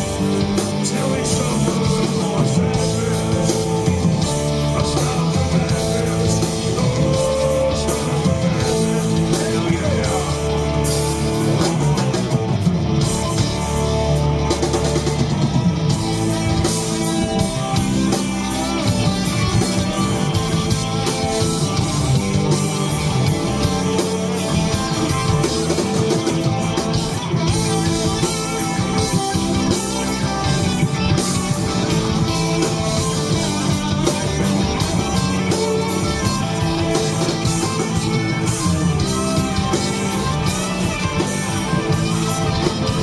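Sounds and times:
live rock band instrumental: 0:00.0 - 0:43.0.

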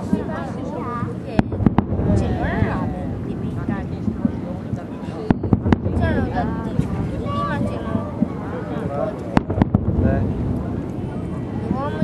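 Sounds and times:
continuous low rumble: 0:00.0 - 0:12.0
fireworks bangs: 0:00.0 - 0:12.0.

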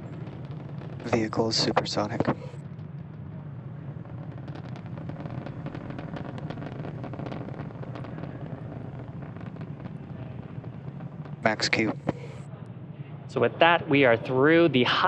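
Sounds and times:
rocket rumble with crackling: 0:00.0 - 0:15.0.

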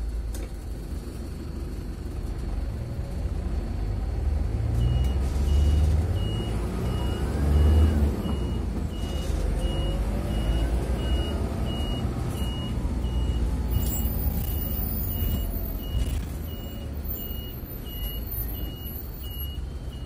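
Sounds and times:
bus engine rumble and whine: 0:00.0 - 0:20.0.

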